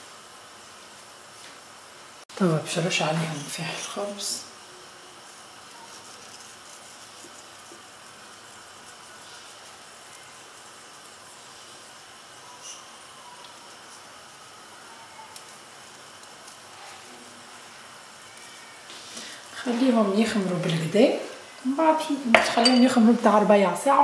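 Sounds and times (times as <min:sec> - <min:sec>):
faint background hiss: 0:00.0 - 0:24.0.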